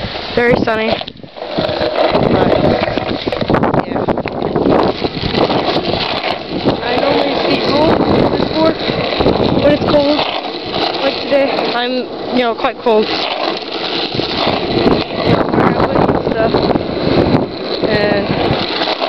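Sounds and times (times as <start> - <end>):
skateboard wheel rumble on asphalt: 0.0 - 19.0.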